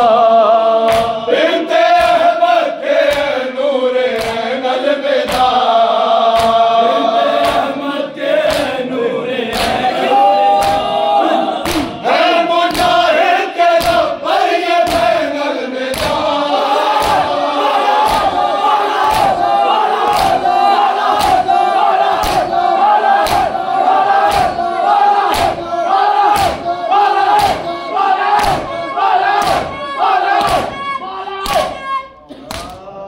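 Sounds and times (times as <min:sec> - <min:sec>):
crowd of men chanting: 0:00.0 - 0:33.0
hands beating chests: 0:05.2 - 0:05.6, 0:06.3 - 0:06.6, 0:07.4 - 0:07.7, 0:08.4 - 0:08.8, 0:10.6 - 0:10.9, 0:11.6 - 0:12.0, 0:12.7 - 0:13.0, 0:13.8 - 0:14.1, 0:14.8 - 0:15.3, 0:15.9 - 0:31.9.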